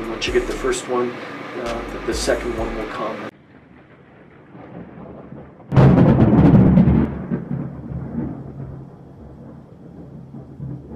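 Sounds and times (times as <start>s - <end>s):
deep cinematic boom: 5.7s - 9.0s.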